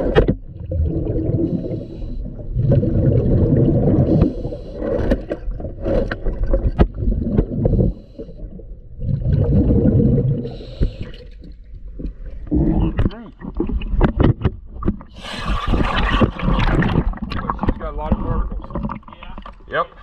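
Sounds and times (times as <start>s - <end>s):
bubbly exhaled air underwater: 0.0s - 19.6s.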